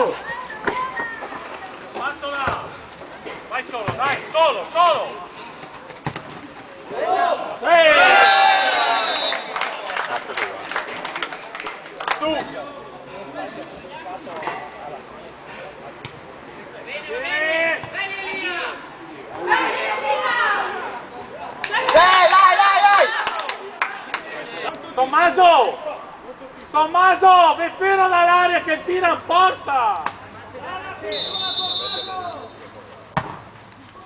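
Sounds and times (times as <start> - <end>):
people shouting outdoors: 6.9 - 9.5, 17.0 - 24.1
whistle blast: 8.1 - 9.6, 31.1 - 32.6.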